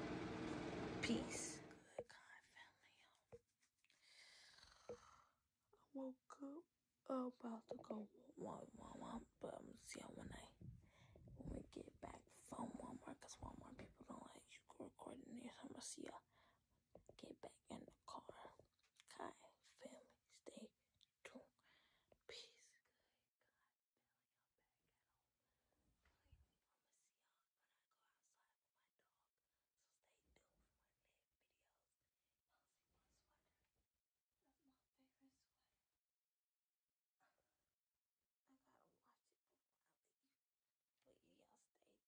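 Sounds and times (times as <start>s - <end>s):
person whispering: 1.0s - 3.2s, 5.9s - 10.6s.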